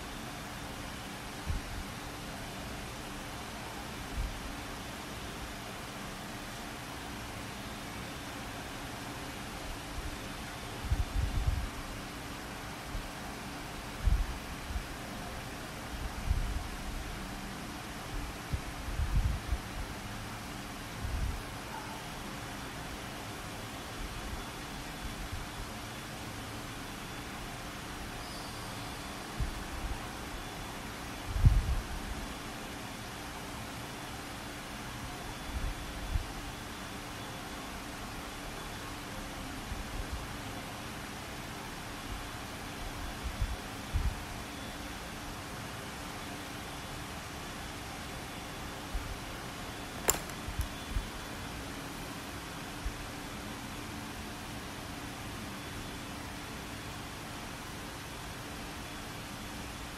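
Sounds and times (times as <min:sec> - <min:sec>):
recording line hiss: 0:00.0 - 0:59.9.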